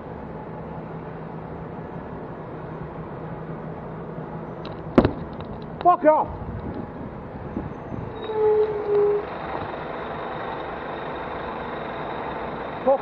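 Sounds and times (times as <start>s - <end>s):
bus passing close: 0.0s - 13.0s
traffic rush: 0.0s - 13.0s
wind noise: 5.0s - 8.9s.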